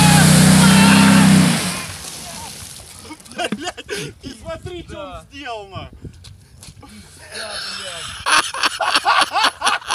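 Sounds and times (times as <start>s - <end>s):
man laughing heartily: 3.1s - 4.4s, 7.4s - 9.9s.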